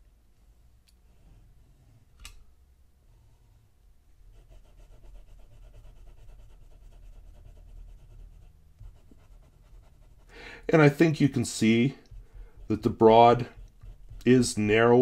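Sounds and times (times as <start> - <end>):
pen nib scratching on paper: 4.3 - 14.8.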